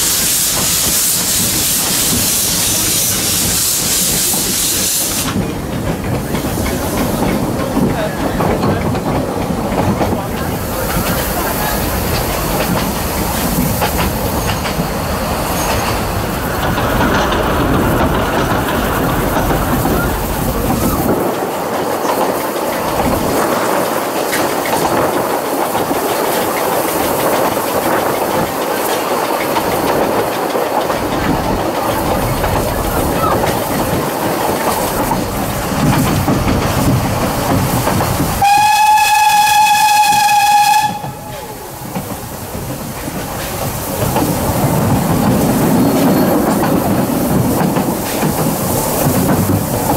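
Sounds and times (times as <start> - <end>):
train wheels clattering on rails: 0.0 - 49.9
steam whistle: 38.4 - 41.5.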